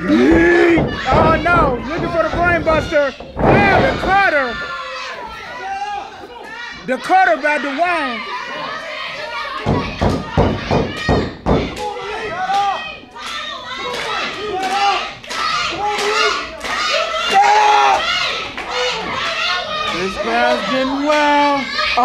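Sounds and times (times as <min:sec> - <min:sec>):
heavy thuds: 0:00.0 - 0:04.8, 0:09.6 - 0:11.8
crowd with children shouting and cheering: 0:00.0 - 0:22.0.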